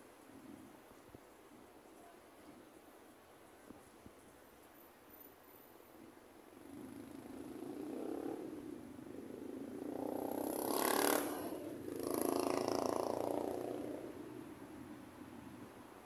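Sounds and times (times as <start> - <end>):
vehicles passing: 6.5 - 16.0.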